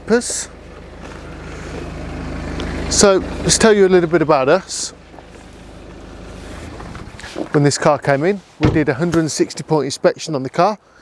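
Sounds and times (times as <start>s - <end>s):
car engine idling: 0.0s - 9.5s.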